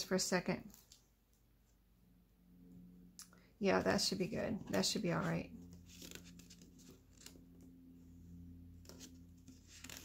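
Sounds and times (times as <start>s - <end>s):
paper rustling: 4.6s - 7.8s, 8.7s - 10.0s.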